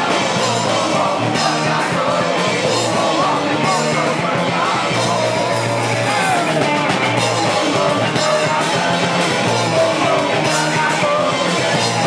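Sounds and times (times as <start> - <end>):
crowd shouting along: 0.0 - 12.0
person singing: 0.0 - 12.0
punk rock band playing: 0.0 - 12.0.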